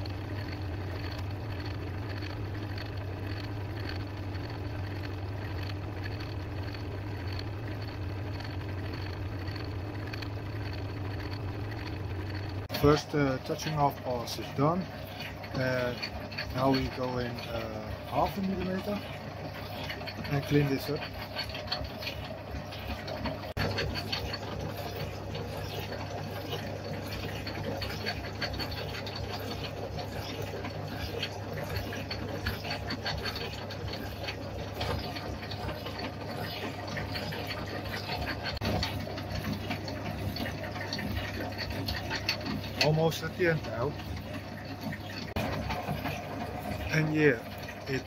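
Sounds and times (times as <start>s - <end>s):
low motor hum: 0.0s - 48.0s
metal shaper cutting: 11.3s - 48.0s.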